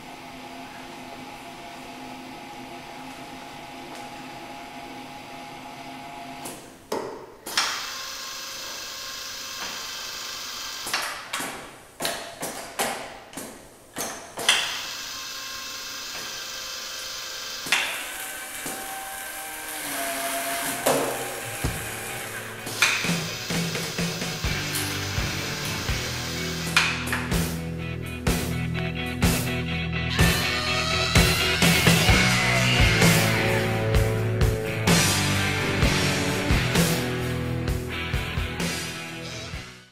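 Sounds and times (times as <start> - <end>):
machine mechanical hum: 0.0 - 28.3
motor whine: 14.8 - 27.7
pneumatic clacks: 19.9 - 25.0.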